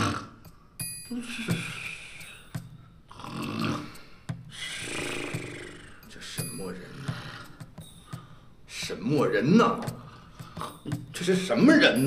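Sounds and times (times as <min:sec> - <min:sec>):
man snoring: 0:00.0 - 0:00.4, 0:03.1 - 0:06.1.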